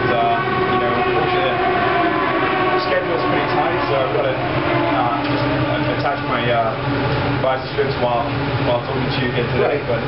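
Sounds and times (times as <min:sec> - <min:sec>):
loud mechanical drone: 0:00.0 - 0:10.0.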